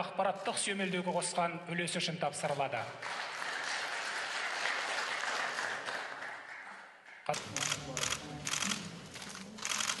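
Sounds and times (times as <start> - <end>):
camera shutters clicking: 7.4 - 10.0.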